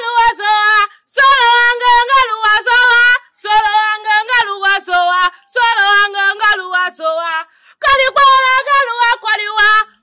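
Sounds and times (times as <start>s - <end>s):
woman singing long held notes: 0.0s - 10.0s.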